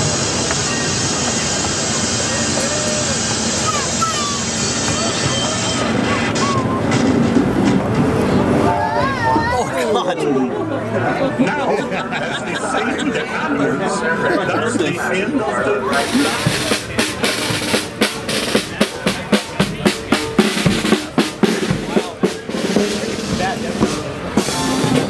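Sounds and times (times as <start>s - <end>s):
small train running: 0.0s - 10.1s, 10.8s - 25.0s
voices chattering: 0.0s - 25.0s.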